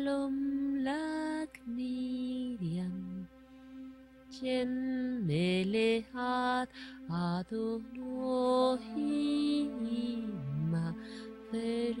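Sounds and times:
person chanting a mantra: 0:04.4 - 0:12.0.

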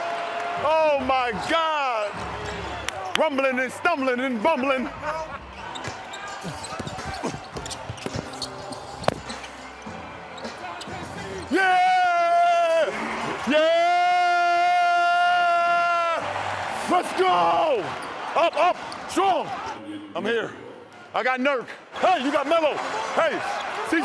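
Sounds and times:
sneaker squeaks on hardwood: 0:05.7 - 0:09.8.

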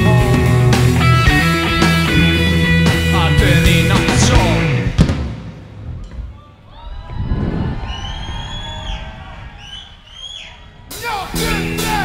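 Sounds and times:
heavy low rumble: 0:03.2 - 0:11.0.

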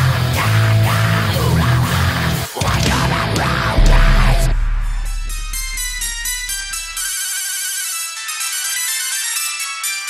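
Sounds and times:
low rumble: 0:03.8 - 0:07.1
high-pitched electronic melody: 0:03.8 - 0:07.2.

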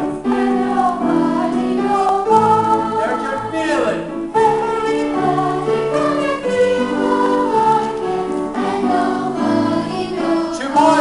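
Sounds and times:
children's choir singing: 0:00.0 - 0:11.0.

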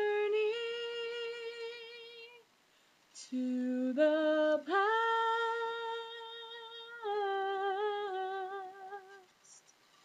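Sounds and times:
woman singing unaccompanied: 0:00.0 - 0:02.5, 0:03.2 - 0:09.6.

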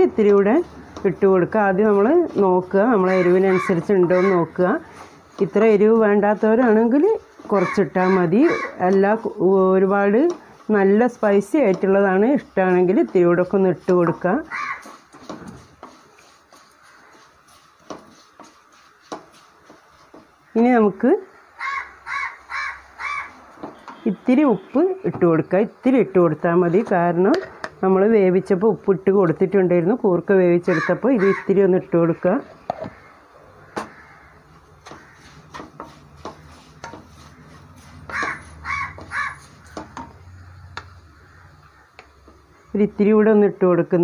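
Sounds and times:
wooden spatula stirring in pan: 0:00.0 - 0:28.1, 0:30.7 - 0:42.7
crow cawing: 0:03.1 - 0:04.4, 0:07.6 - 0:08.8, 0:14.5 - 0:14.9, 0:21.6 - 0:23.4, 0:30.7 - 0:31.5, 0:32.8 - 0:35.5, 0:38.1 - 0:39.8, 0:40.7 - 0:42.1.

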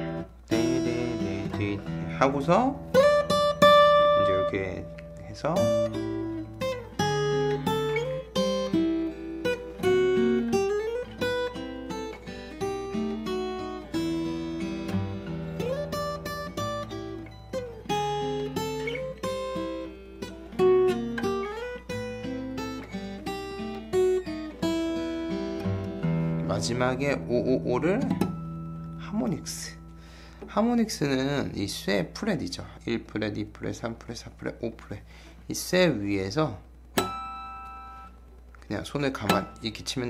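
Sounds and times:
fingerstyle acoustic guitar: 0:00.0 - 0:32.2, 0:36.9 - 0:40.0.

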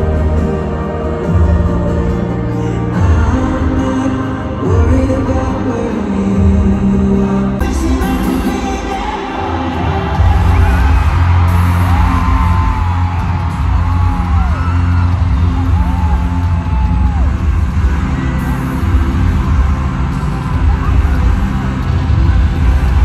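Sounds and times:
live concert music with heavy bass: 0:00.0 - 0:23.0
fans whooping and screaming: 0:09.0 - 0:23.0.

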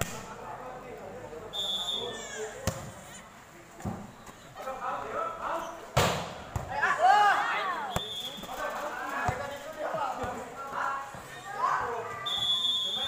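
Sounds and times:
ball thudding: 0:02.6 - 0:02.9, 0:05.9 - 0:06.8
volleyball struck hard: 0:06.0 - 0:06.7
people shouting: 0:06.8 - 0:08.0.

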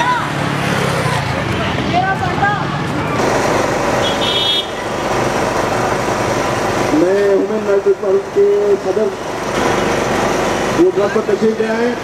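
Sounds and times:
road traffic: 0:00.0 - 0:12.0
short high-pitched horn toot: 0:04.0 - 0:04.8.

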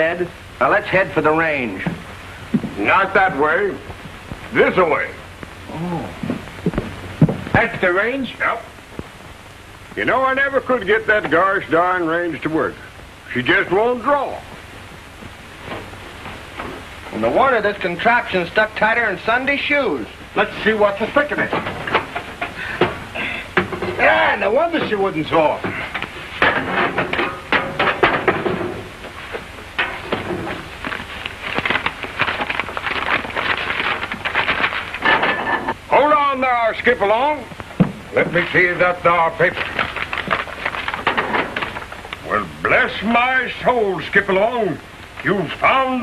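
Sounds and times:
film soundtrack hiss: 0:00.0 - 0:46.0
man calling out: 0:04.6 - 0:06.4, 0:24.0 - 0:25.7
clattering and knocking in stove: 0:21.4 - 0:24.1, 0:25.6 - 0:31.0, 0:33.5 - 0:35.7, 0:40.1 - 0:41.9.

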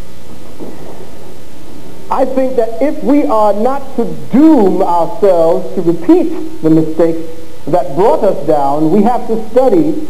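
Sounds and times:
low electrical hum: 0:00.0 - 0:10.0
steady hiss: 0:00.0 - 0:10.0.

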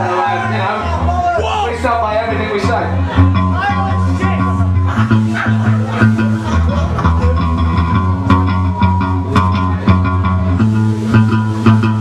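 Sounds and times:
bass guitar low notes: 0:00.0 - 0:12.0
electric guitar: 0:00.0 - 0:12.0.

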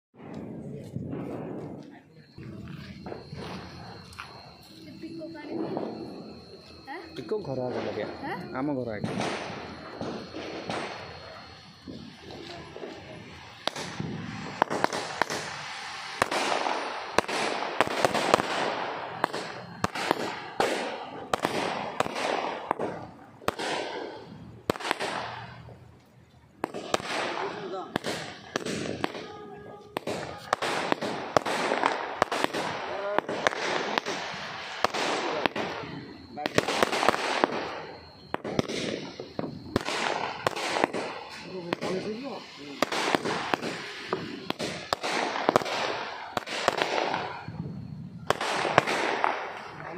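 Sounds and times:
firework cracks and pops: 0:02.6 - 0:49.9.

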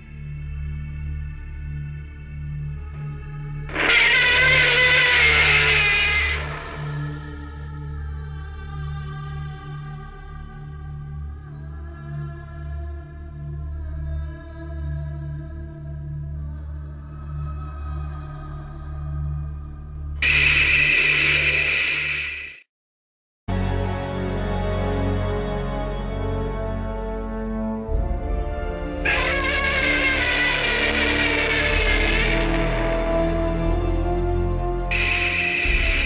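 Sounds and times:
low droning music: 0:00.0 - 0:22.1, 0:23.6 - 0:36.0
loud steady hissing: 0:03.7 - 0:07.0, 0:20.2 - 0:22.6, 0:29.1 - 0:33.1, 0:34.9 - 0:36.0
low pulsing ambient music drone: 0:27.9 - 0:36.0
monster roar: 0:29.0 - 0:33.4, 0:34.9 - 0:36.0.

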